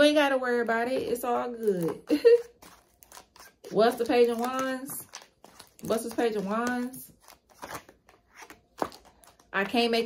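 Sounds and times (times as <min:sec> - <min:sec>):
cards clicking and rustling: 0:01.6 - 0:09.5.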